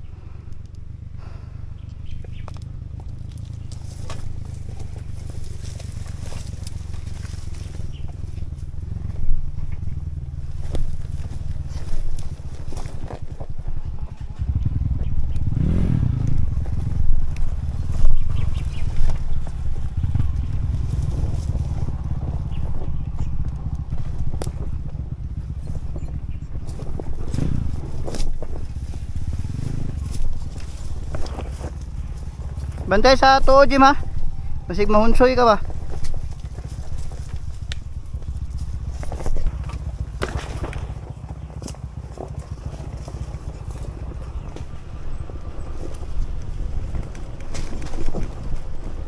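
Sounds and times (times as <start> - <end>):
dirt bike engine: 0.0 - 49.0
bike knocks and clicks: 1.8 - 33.2, 35.2 - 49.0.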